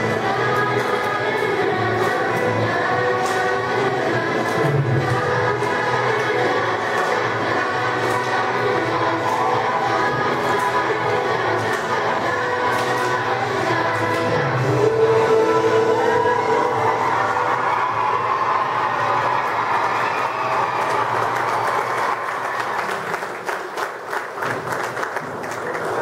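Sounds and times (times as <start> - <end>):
audience clapping: 0.0 - 13.3, 19.2 - 26.0
children's song: 0.0 - 18.9.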